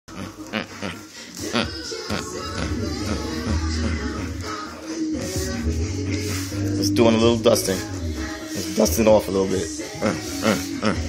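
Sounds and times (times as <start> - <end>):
feather duster swishing: 1.9 - 10.8.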